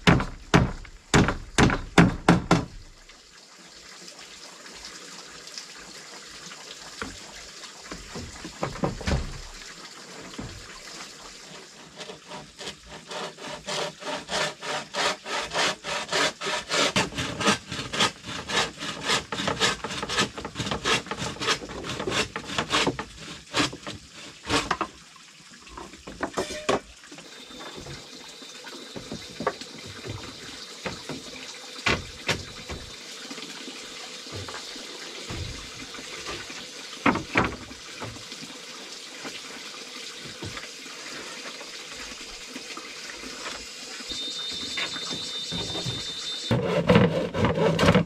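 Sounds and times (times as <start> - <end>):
wood knocking: 0.0 - 2.8, 7.9 - 9.6, 29.0 - 32.9, 37.0 - 38.2, 44.8 - 48.0
hand saw cutting wood: 11.4 - 25.0, 44.6 - 48.0.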